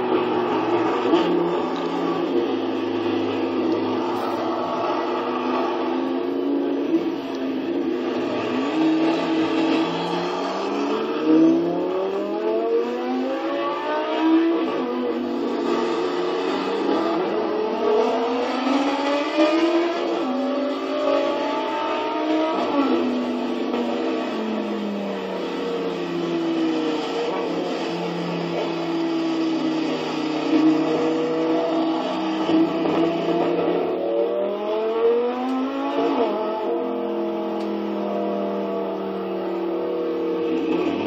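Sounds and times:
car engine accelerating hard: 0.0 - 41.0.

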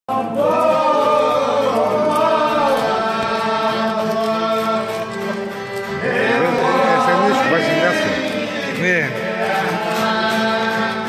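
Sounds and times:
voices singing slow melody: 0.1 - 11.0
violin: 0.4 - 11.0.

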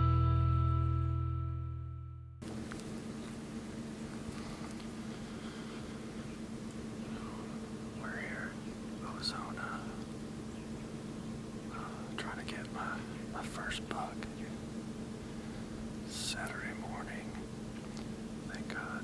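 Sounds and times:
low electrical hum: 2.4 - 19.0
man whispering: 7.2 - 10.1, 11.7 - 14.6, 16.0 - 17.4, 18.5 - 19.0.

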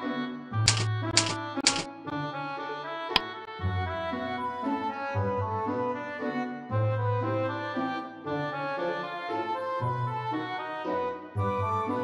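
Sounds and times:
instrumental background music: 0.0 - 12.0
typewriter key sound effects: 0.7 - 1.9.

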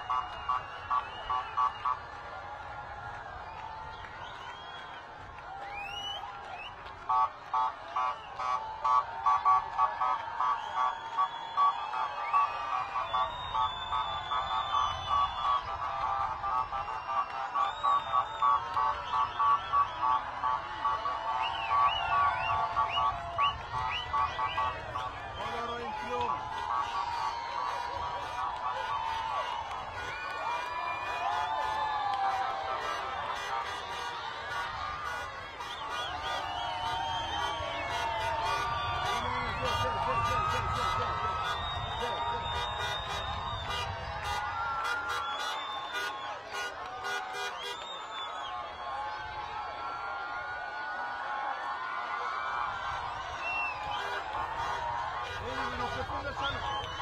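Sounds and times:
crowd cheering: 0.0 - 57.0
crowd shouting and singing: 15.2 - 47.7
vehicle horns honking: 15.6 - 30.4, 31.1 - 47.9, 53.9 - 56.6.

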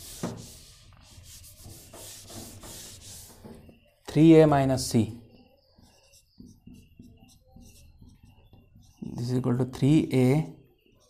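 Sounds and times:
eraser rubbing on whiteboard: 0.0 - 3.7, 5.4 - 9.2.

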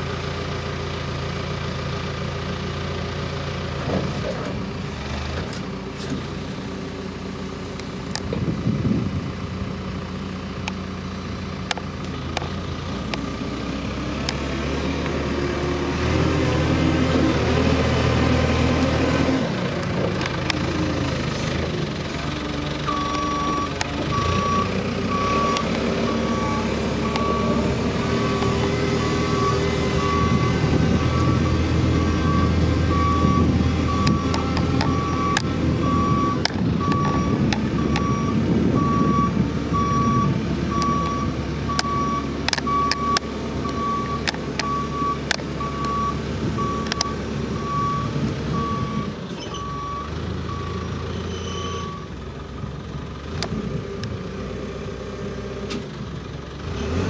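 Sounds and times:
diesel engine running: 0.0 - 57.0
reversing alarm beeping: 22.9 - 52.1.

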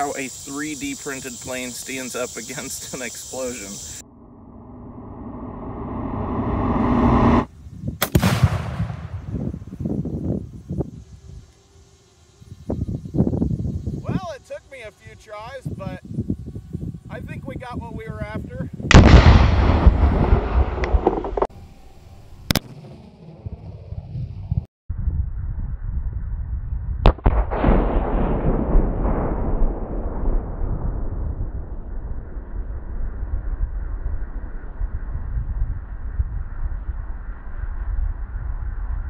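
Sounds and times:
explosion rumble: 3.8 - 9.7, 18.9 - 21.5, 27.0 - 33.8
sharp explosion crack: 4.7 - 9.6, 18.9 - 21.5, 27.0 - 32.4.

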